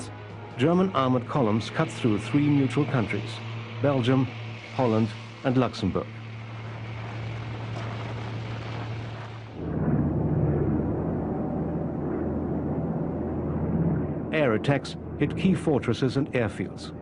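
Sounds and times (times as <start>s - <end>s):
propeller aircraft engines droning: 0.0s - 17.0s
steady rumble with low hum: 0.0s - 17.0s.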